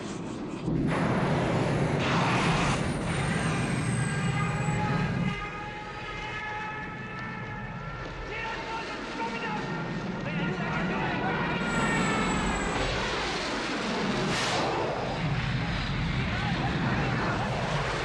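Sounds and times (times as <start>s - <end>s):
faint falling whine: 0.0s - 17.9s
jet engine noise: 0.0s - 18.0s
voices: 3.3s - 12.6s.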